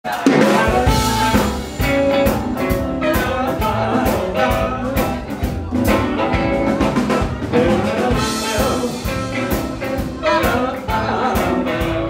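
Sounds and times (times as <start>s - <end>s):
blues band playing: 0.1s - 12.0s.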